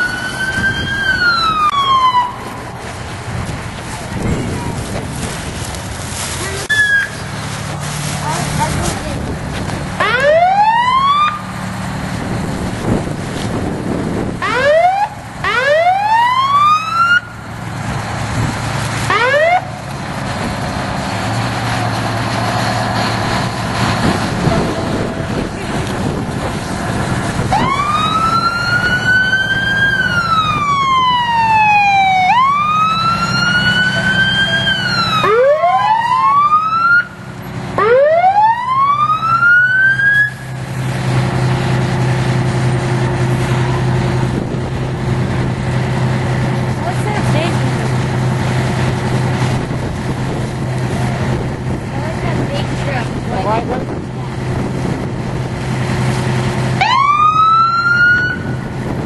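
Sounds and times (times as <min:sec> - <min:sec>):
emergency vehicle siren: 0:00.0 - 0:03.0, 0:06.6 - 0:07.4, 0:10.0 - 0:11.8, 0:14.0 - 0:17.6, 0:19.0 - 0:19.9, 0:23.1 - 0:40.6, 0:56.7 - 0:59.0
engine hum: 0:00.0 - 0:59.0.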